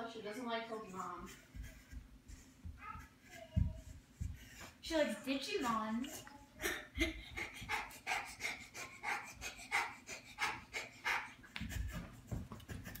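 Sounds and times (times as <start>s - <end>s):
rapid rhythmic panting: 0.7s - 13.0s.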